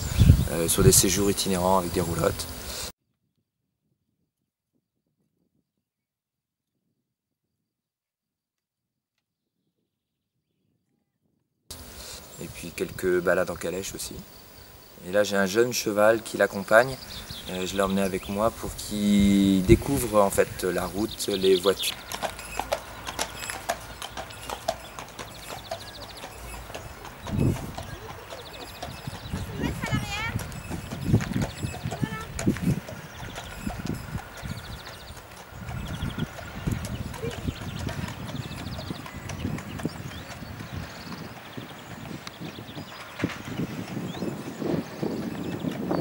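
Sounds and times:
horse hooves clip-clopping on asphalt: 16.2s - 46.0s.

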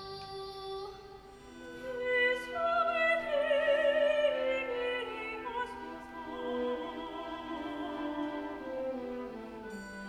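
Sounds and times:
orchestra with bowed strings: 1.4s - 10.0s
woman singing with vibrato: 1.8s - 9.0s.

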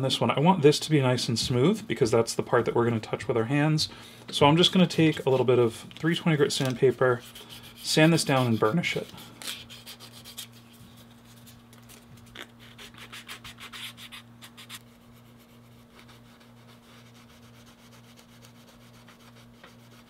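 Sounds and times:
sandpaper rubbing leather edge: 7.2s - 10.7s, 12.4s - 20.0s.

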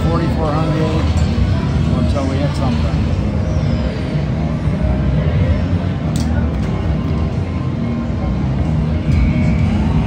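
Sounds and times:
low rumble of machines and crowd: 0.0s - 10.0s.

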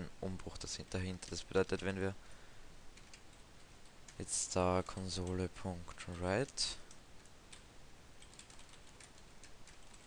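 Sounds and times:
computer keyboard typing: 3.0s - 3.4s, 6.8s - 10.0s.

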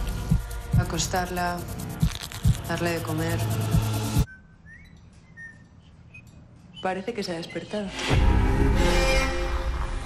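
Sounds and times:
bird whistled chirps: 4.3s - 6.2s
loud trailer music: 7.9s - 10.0s.

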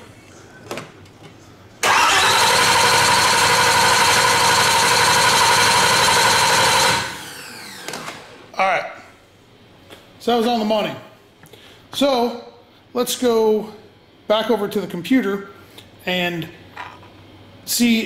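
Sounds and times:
engine running: 1.8s - 7.8s
engine cranking on starter motor: 1.8s - 8.3s.

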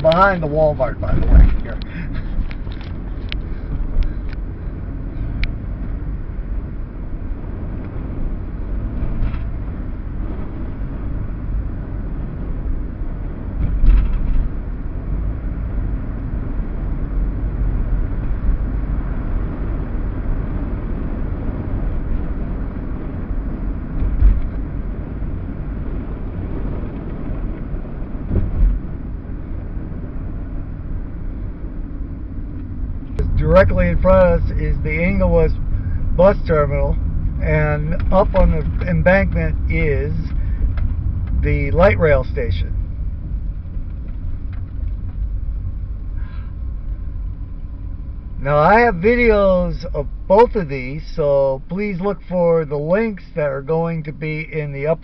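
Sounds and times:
car engine and tyre rumble: 0.0s - 55.0s
low thumps: 1.0s - 1.9s, 13.4s - 14.7s, 23.8s - 30.2s.

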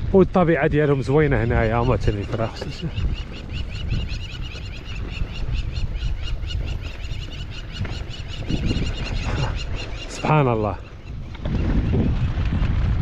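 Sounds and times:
birds calling in fast notes: 0.0s - 12.5s
wind rumble on microphone: 0.0s - 13.0s.

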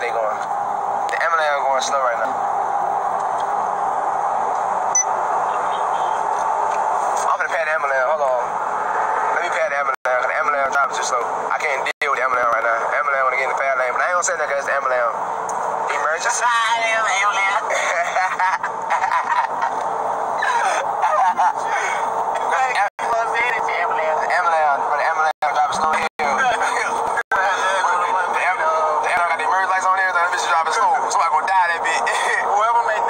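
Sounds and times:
road and wind noise in truck cab: 0.0s - 33.0s
man laughing: 17.6s - 19.8s, 20.4s - 22.1s.

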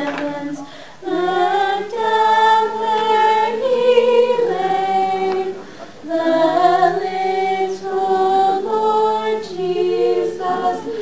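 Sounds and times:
choir singing a cappella: 0.0s - 11.0s.

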